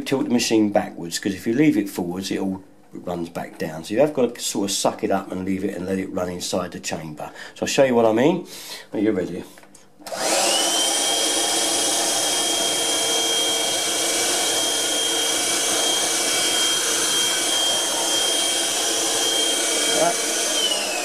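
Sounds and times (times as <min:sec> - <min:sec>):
handheld vacuum motor whine: 0:10.0 - 0:21.0.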